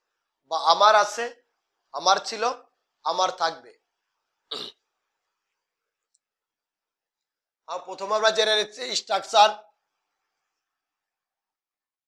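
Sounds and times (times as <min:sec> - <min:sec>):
man clearing his throat: 0:04.5 - 0:04.7.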